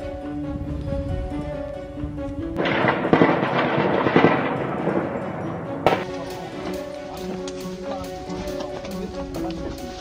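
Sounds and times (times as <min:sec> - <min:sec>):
background music: 0:00.0 - 0:10.0
crackling blast noise: 0:02.6 - 0:08.9
heavy bangs: 0:02.6 - 0:09.0.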